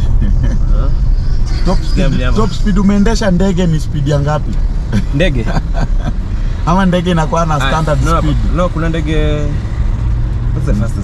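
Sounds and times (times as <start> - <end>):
man talking: 0.0 - 9.6, 10.6 - 11.0
car cabin engine and road noise: 0.0 - 11.0.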